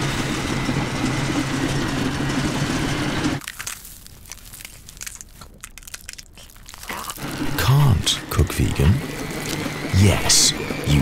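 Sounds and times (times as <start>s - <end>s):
stand mixer motor hum: 0.0s - 3.4s, 9.0s - 10.8s
faint crunching and clicking: 3.4s - 7.3s.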